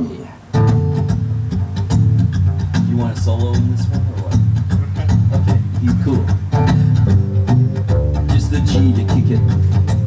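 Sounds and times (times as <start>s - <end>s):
acoustic guitar strumming: 0.5s - 10.0s
double bass notes: 0.5s - 10.0s.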